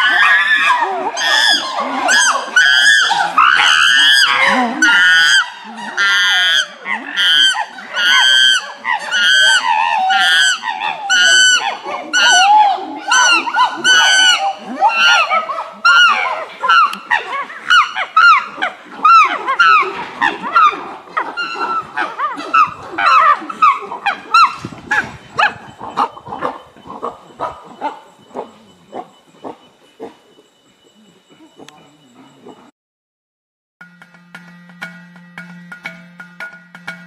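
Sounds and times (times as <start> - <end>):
chimpanzees screaming: 0.0 - 30.3.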